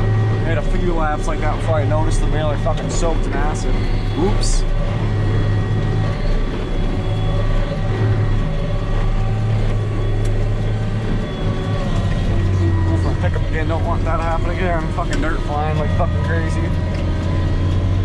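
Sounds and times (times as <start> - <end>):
tractor engine running under load: 0.0 - 18.0.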